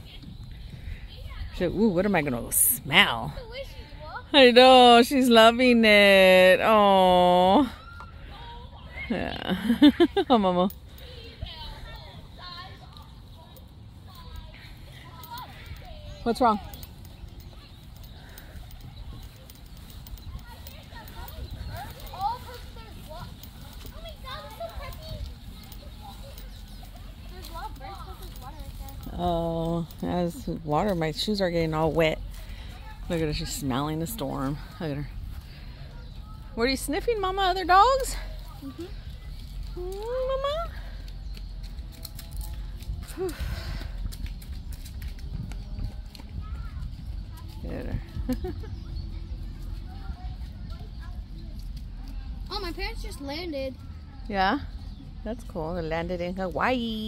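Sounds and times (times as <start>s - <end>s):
faint indistinct voices: 7.2s - 56.7s
wind rumbling on microphone: 11.2s - 37.2s, 37.9s - 53.0s.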